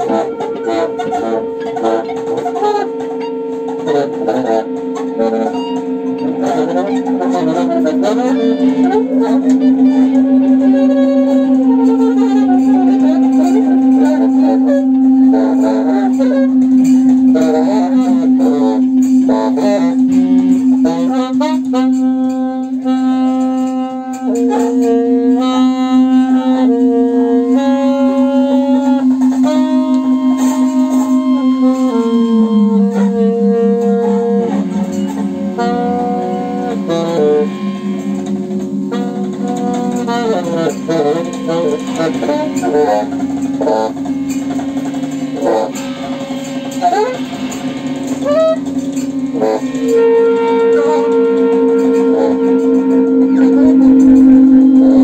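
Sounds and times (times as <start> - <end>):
free-improvised music: 0.0 - 55.0
loose bending notes: 0.0 - 55.0
repeating short pitched notes: 0.0 - 55.0
steady low drone: 0.0 - 55.0.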